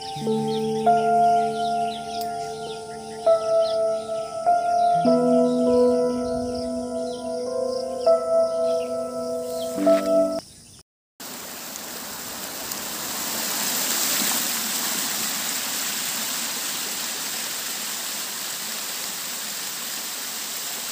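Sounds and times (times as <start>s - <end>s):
held music tones: 0.0s - 10.4s
water rushing over rocks: 11.2s - 20.9s.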